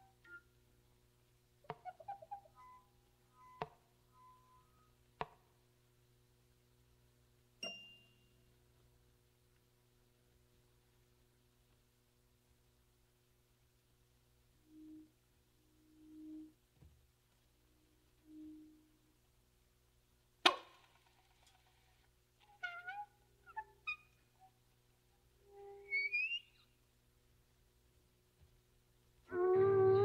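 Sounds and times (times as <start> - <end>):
squeaky sliding tones: 25.5 - 26.6, 29.3 - 30.0
soft low notes: 27.2 - 30.0.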